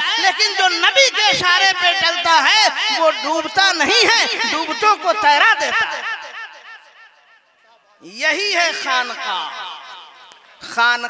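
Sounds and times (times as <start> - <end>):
man's voice over loudspeaker with echo: 0.0 - 11.0.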